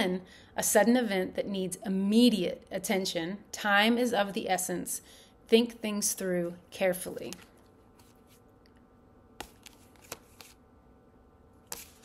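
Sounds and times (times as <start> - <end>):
cards clicking: 9.4 - 10.6.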